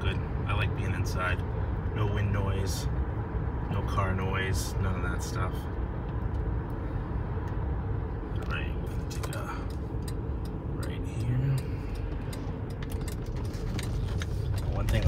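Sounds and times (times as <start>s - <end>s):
low rumble of tyres and engine: 0.0s - 15.0s.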